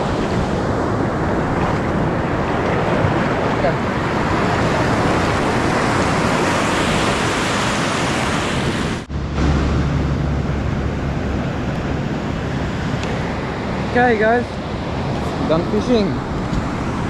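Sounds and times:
waves washing in shallow surf: 0:00.0 - 0:17.0
wind on microphone: 0:00.0 - 0:17.0.

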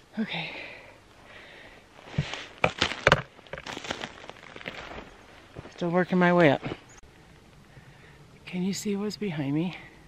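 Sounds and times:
footsteps crunching on twigs: 0:01.9 - 0:07.0.

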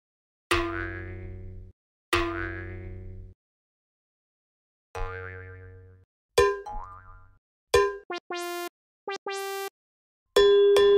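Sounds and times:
cartoon boing sound effects: 0:02.2 - 0:03.0, 0:05.0 - 0:05.9, 0:06.7 - 0:07.4.

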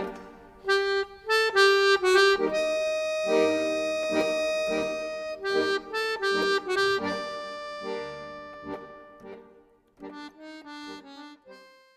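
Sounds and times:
accordion music: 0:00.0 - 0:11.9.

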